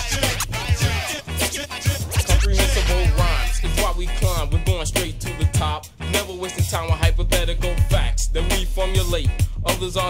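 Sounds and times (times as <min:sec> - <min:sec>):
chopped vocal sounds: 0:00.0 - 0:10.0
deep bass note: 0:02.3 - 0:05.5.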